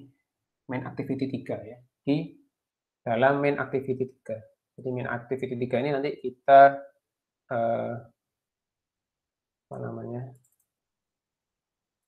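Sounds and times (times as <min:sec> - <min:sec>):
man speaking: 0:00.7 - 0:02.4, 0:03.1 - 0:08.2, 0:09.7 - 0:10.4
computer mouse clicks: 0:10.4 - 0:10.8.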